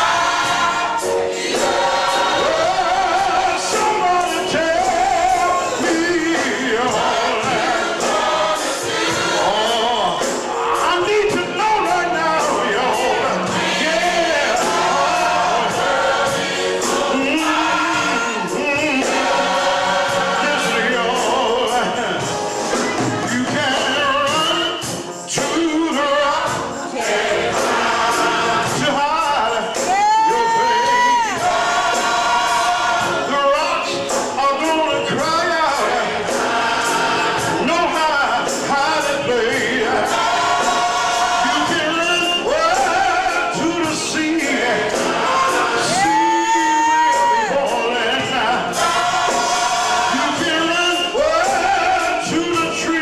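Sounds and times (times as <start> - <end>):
choir singing: 0.0 - 53.0
steady percussion beat: 0.0 - 53.0.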